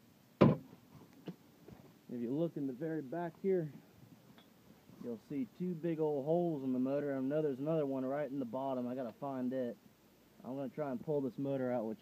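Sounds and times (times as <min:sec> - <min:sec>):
sharp knock: 0:00.4 - 0:00.7.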